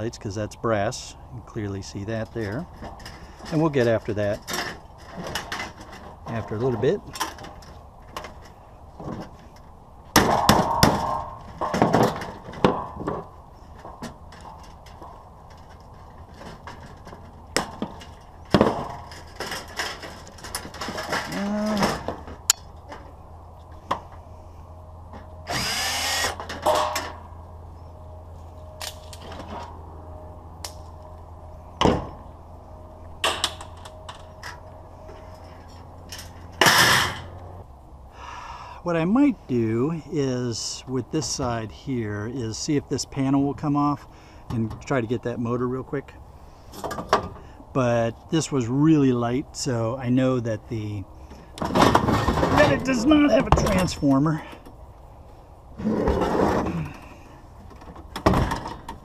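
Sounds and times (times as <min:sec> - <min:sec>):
sheet-metal knocks and clatter: 0:02.7 - 0:22.4, 0:57.7 - 0:59.0
cordless drill running: 0:25.5 - 0:26.4.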